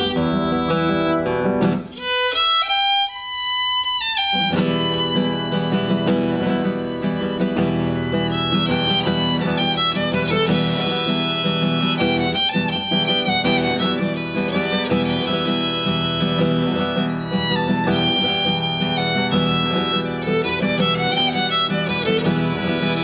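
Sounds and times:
fingerpicked classical guitar: 0.0 - 23.0
violin bowed melody: 0.0 - 23.0.

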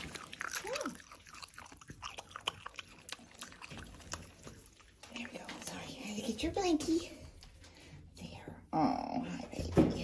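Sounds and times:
animal chewing food: 0.0 - 8.2.

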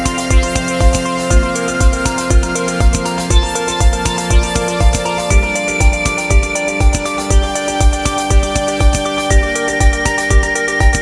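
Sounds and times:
techno kick drum: 0.0 - 11.0.

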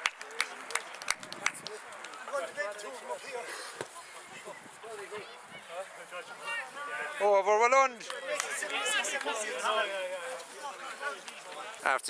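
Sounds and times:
voices outdoors: 0.0 - 12.0.

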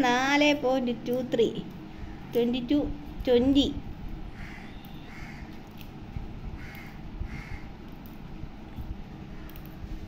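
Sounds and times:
bird harsh calls: 4.3 - 5.6, 6.6 - 7.8.

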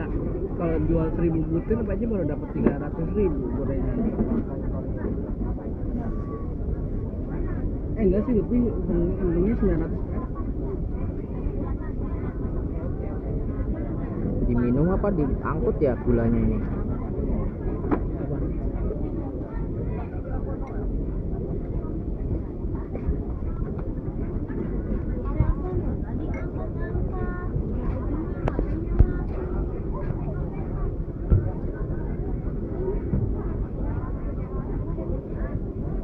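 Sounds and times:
indistinct background voices: 15.3 - 36.0.

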